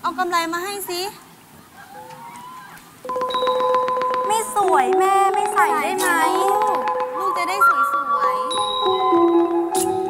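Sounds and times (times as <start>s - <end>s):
xylophone rapid repeated strikes: 3.1s - 9.8s
traditional ensemble music: 3.1s - 10.0s.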